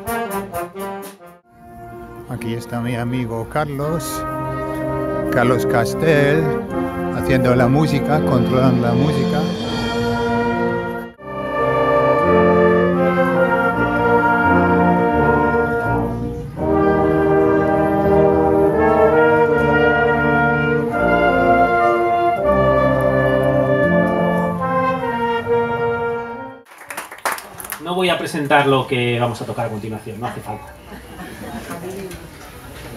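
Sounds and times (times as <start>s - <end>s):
wind band playing held chords: 0.0s - 26.7s.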